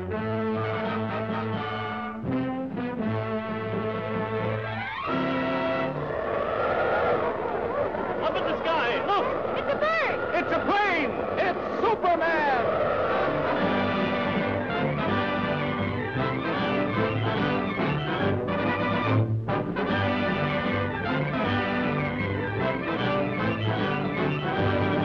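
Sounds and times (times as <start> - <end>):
orchestral brass fanfare: 0.0 - 4.1, 13.6 - 25.0
swooping glides: 4.6 - 19.1.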